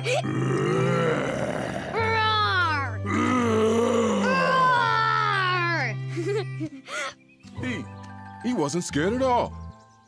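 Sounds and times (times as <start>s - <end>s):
cartoon lion roar: 0.2s - 2.4s, 3.0s - 5.2s.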